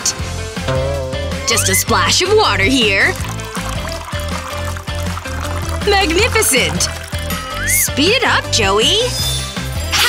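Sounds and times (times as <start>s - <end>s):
background music with bass line: 0.0s - 10.0s
water trickling onto a plate: 2.7s - 8.1s.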